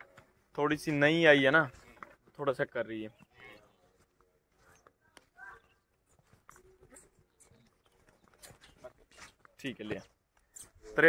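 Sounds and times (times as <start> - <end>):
hoof steps on sandy dirt: 3.1 - 11.0.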